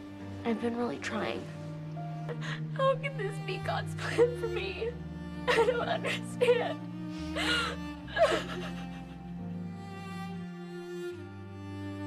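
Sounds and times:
soft string music: 0.0s - 12.0s
woman gasping tearfully: 7.2s - 8.5s.

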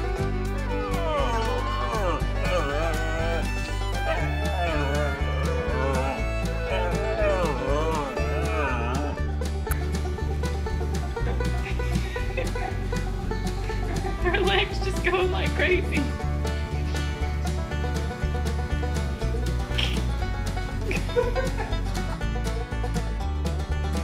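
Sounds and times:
bluegrass music with banjo: 0.0s - 24.0s
dog howling: 0.7s - 9.4s.

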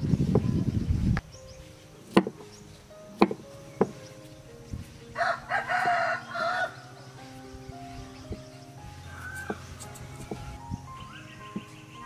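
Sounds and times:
rooster crowing: 5.2s - 7.0s.

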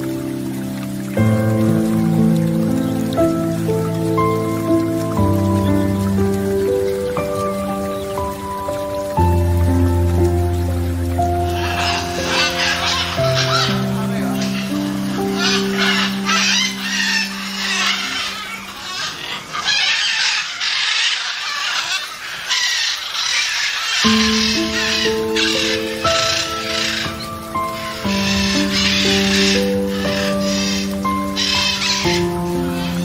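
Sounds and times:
background music of held notes: 0.0s - 18.7s, 23.8s - 33.0s
macaws squawking: 11.4s - 33.0s.

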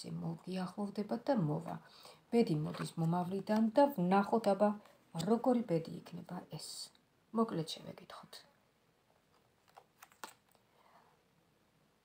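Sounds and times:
cards being shuffled: 9.3s - 10.6s.

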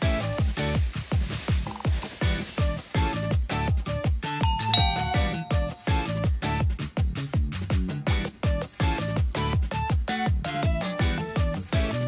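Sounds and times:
bright two-note chime: 4.4s - 6.2s.

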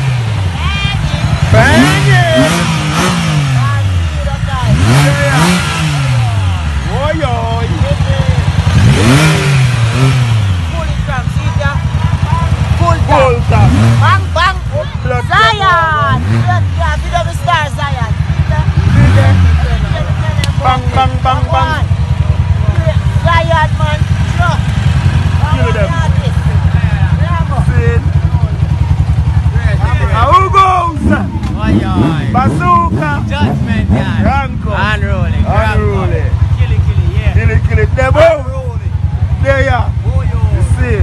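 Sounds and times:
vehicle engine revving: 0.0s - 41.0s
voices talking: 0.0s - 41.0s.

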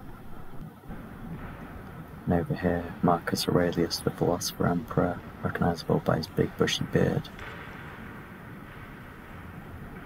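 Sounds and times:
background hiss and low hum: 0.0s - 10.0s.

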